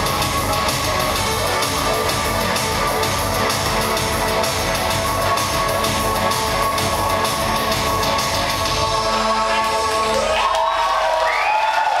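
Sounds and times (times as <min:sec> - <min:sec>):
crowd cheering and whooping: 0:09.7 - 0:12.0.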